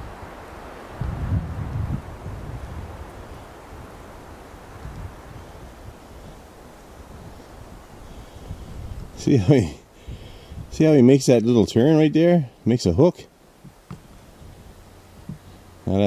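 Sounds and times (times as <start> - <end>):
wind buffeting microphone: 0.0 - 11.2, 13.6 - 15.8
steady hiss of wind: 0.0 - 16.0.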